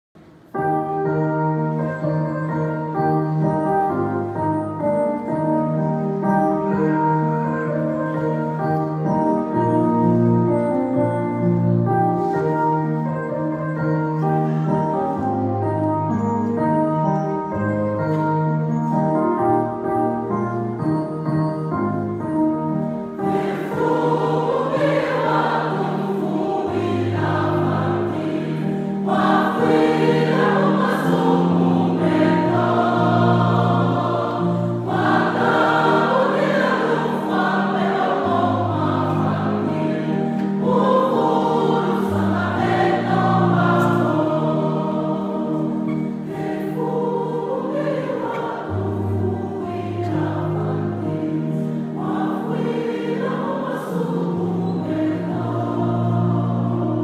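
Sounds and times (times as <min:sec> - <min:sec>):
choir singing gospel: 0:22.9 - 0:57.0.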